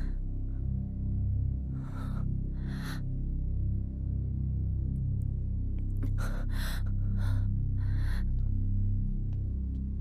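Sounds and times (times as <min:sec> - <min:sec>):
low musical drone: 0:00.0 - 0:10.0.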